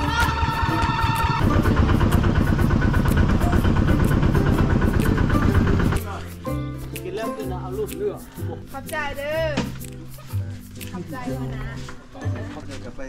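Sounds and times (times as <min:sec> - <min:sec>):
motorcycle engine running: 0:00.0 - 0:06.1
music playing: 0:00.0 - 0:13.0.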